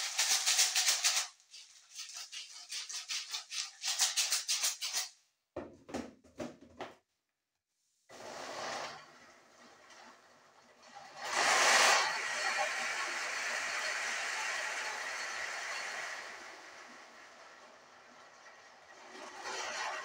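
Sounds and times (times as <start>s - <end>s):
blender grinding peanuts: 11.0s - 20.0s.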